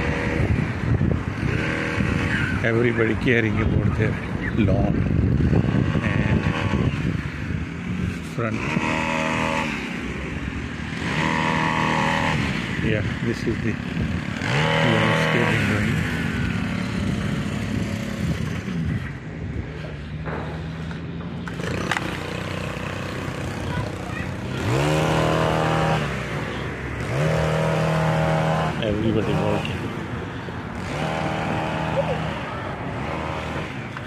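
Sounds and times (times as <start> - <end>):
small petrol engine revving: 0.0 - 34.0.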